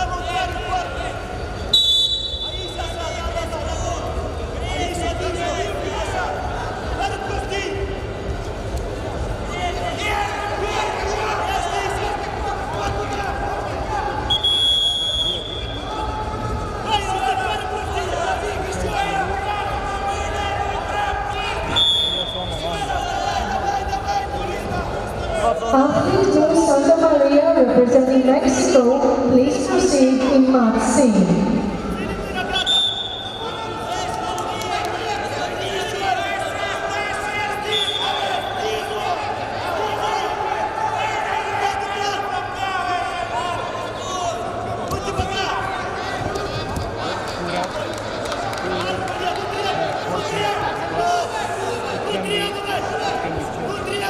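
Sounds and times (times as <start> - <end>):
crowd chatter and shouting: 0.0 - 54.0
voices in a hall: 0.0 - 54.0
referee's whistle blast: 1.7 - 2.8, 14.3 - 15.8, 21.7 - 22.6, 32.5 - 33.6, 37.7 - 38.6.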